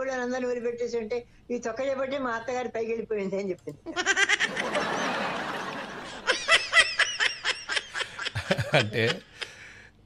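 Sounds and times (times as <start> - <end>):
person laughing: 6.0 - 9.6.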